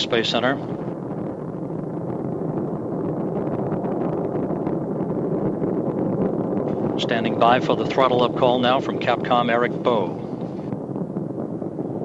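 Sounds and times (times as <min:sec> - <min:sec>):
rocket engines roaring: 0:00.0 - 0:12.0.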